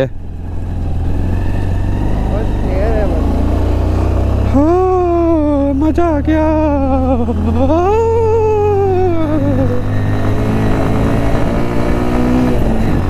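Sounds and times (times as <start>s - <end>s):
motorcycle engine rumbling: 0.0s - 13.0s
person singing a gliding note: 7.6s - 9.9s.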